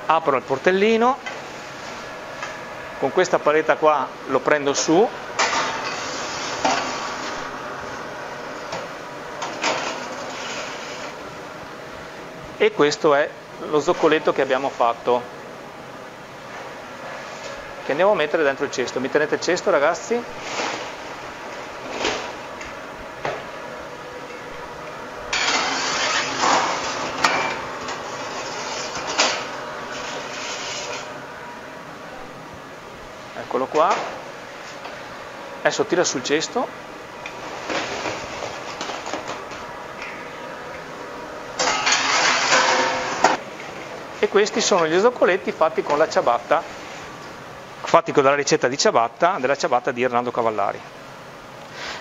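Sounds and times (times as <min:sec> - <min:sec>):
metal peel scraping oven deck: 0:09.5 - 0:11.2, 0:25.3 - 0:31.1, 0:41.6 - 0:43.4
wire tray scraping: 0:28.1 - 0:31.1
metal clank: 0:41.6 - 0:43.4.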